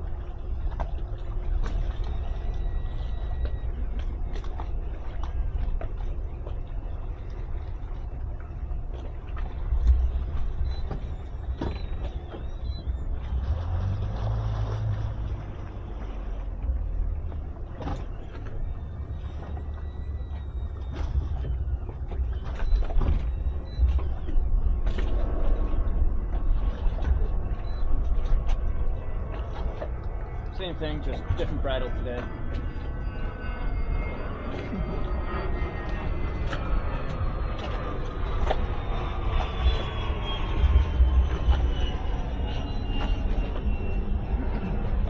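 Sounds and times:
outboard motors running: 0.0s - 45.0s.

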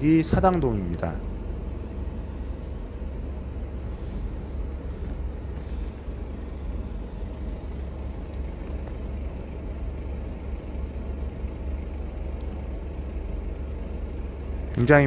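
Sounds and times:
car engine idling: 0.0s - 15.0s
hum of surrounding traffic: 0.0s - 15.0s.

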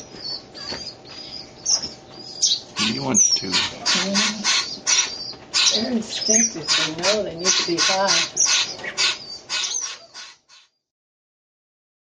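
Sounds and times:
heron squawking: 2.4s - 10.7s.

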